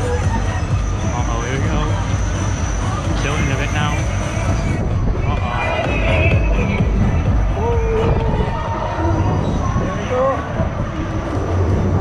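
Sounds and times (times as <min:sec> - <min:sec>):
fairground music: 0:00.0 - 0:12.0
ride rumbling: 0:00.0 - 0:12.0
voices: 0:00.0 - 0:12.0
wind on microphone: 0:00.0 - 0:12.0.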